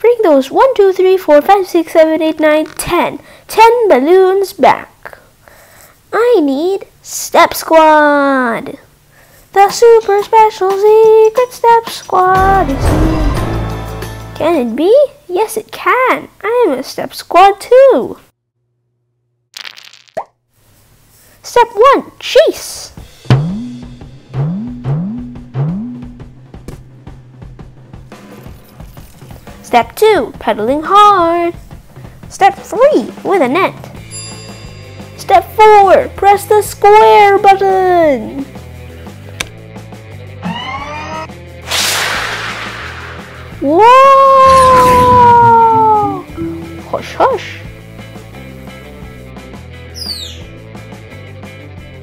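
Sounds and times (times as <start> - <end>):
quiet background music: 9.8 - 16.6, 26.2 - 41.5, 43.6 - 52.0
rushing booster blast: 41.7 - 43.7
short pop bending upward in pitch: 44.6 - 47.0
button click: 46.3 - 47.0.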